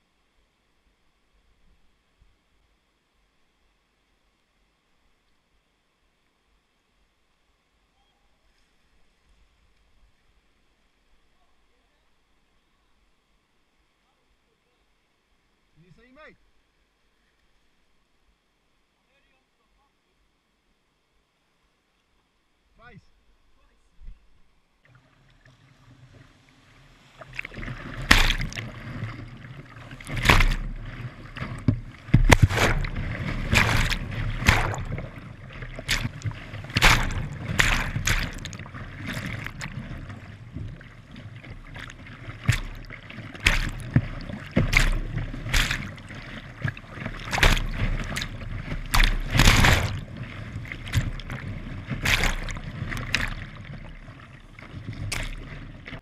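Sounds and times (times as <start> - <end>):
waves splashing over kayak: 25.7 - 56.0
rushing whitewater: 26.6 - 40.9, 41.7 - 53.8.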